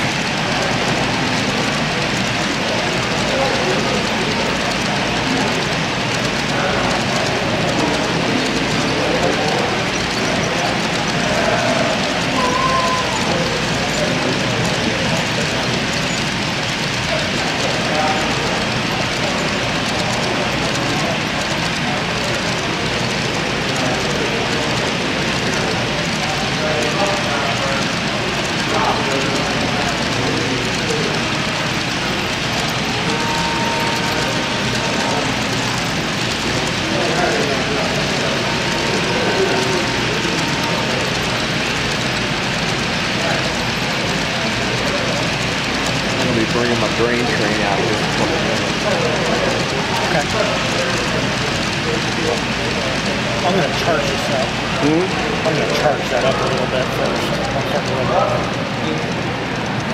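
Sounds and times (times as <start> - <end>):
crowd murmur in large hall: 0.0 - 59.9
model train rolling on track: 0.0 - 59.9.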